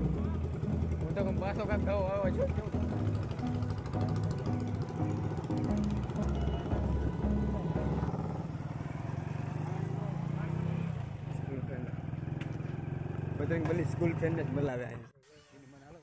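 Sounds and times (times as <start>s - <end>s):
music playing: 0.0s - 8.4s
motorcycle engine running: 0.0s - 14.6s.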